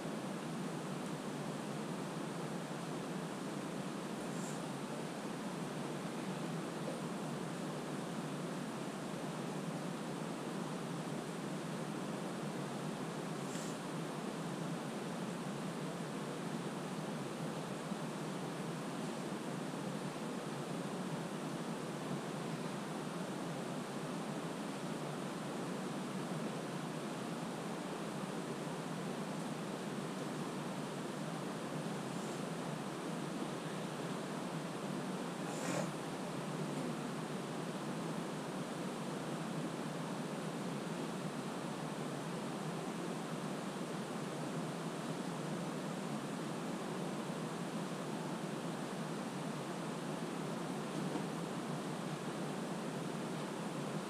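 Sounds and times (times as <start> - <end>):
steady hiss: 0.0 - 54.0.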